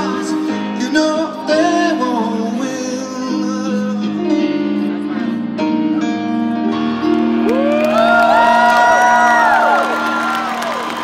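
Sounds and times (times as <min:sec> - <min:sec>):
crowd whooping and cheering: 0:07.0 - 0:11.0.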